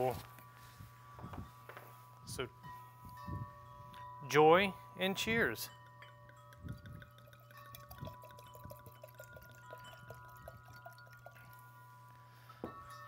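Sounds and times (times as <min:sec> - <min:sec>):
wind chimes ringing: 0:00.0 - 0:13.0
wine pouring into glass: 0:06.4 - 0:11.8.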